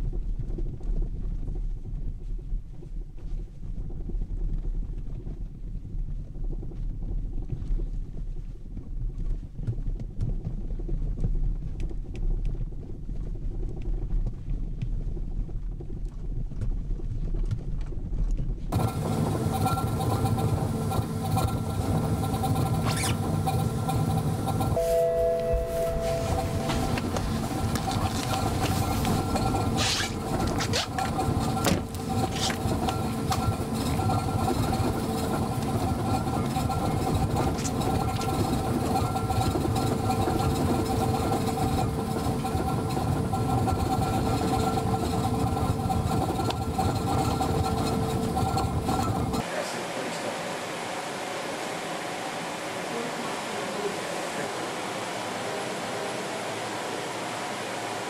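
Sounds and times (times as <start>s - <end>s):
vehicle test rig hum and rumble: 0.0s - 49.5s
steady tones: 18.8s - 58.0s.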